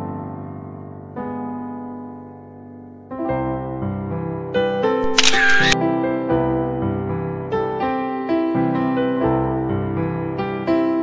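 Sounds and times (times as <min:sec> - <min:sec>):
gentle piano music: 0:00.0 - 0:04.6, 0:06.6 - 0:11.0
short hissy sound effect: 0:05.0 - 0:05.8.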